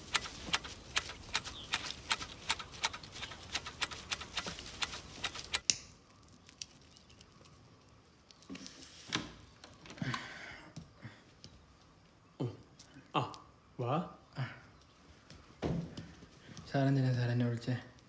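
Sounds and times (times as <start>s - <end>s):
tea shoots snapping: 0.0s - 8.8s.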